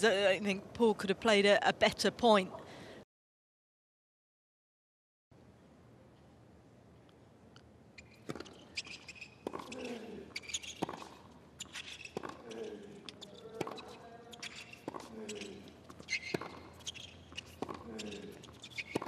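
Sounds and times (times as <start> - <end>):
racquet striking tennis ball: 8.0 - 19.0
sneakers squeaking: 8.0 - 19.0
tennis ball bouncing: 8.0 - 19.0
players grunting: 9.6 - 10.3, 12.3 - 13.1, 17.7 - 18.4.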